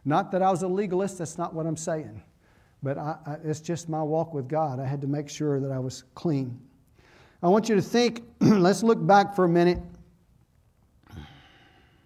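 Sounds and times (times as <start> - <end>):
man sighing: 11.0 - 12.0.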